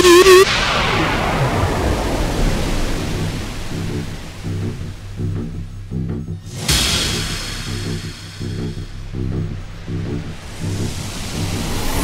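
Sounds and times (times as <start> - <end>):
wobbling synth line: 0.0 - 0.5
low pulsing bass: 0.0 - 12.0
wash of noise: 0.5 - 5.4, 6.5 - 12.0.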